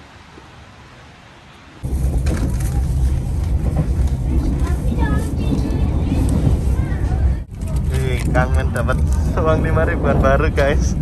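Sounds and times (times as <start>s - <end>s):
train carriage rumble: 1.8s - 11.0s
voices: 2.5s - 11.0s.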